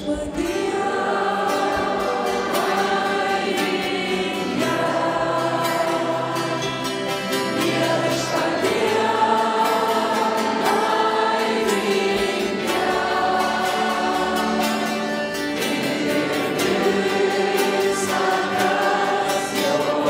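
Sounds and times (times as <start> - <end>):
congregation singing: 0.0 - 20.0
musical accompaniment: 0.0 - 20.0.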